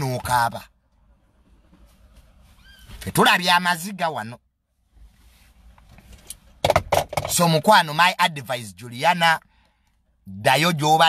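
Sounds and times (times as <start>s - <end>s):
low rumble inside car: 0.0s - 11.0s.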